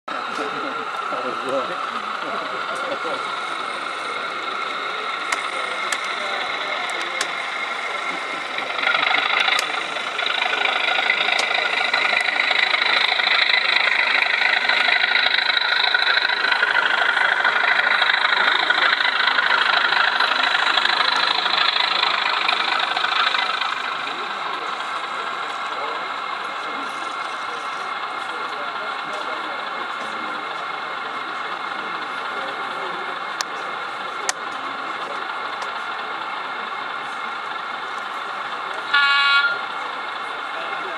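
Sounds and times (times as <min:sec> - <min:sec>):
model diesel locomotive engine sound: 0:00.0 - 0:40.9.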